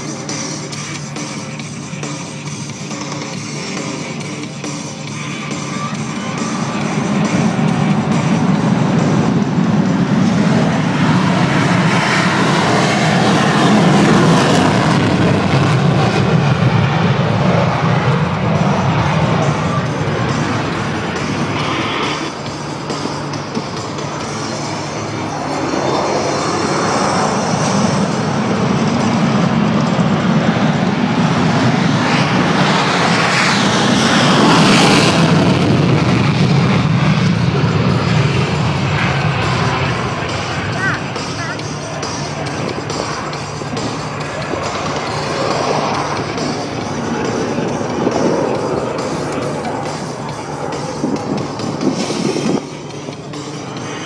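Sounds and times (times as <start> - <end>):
fighter jets passing: 0.0 - 54.0
music playing: 0.0 - 54.0.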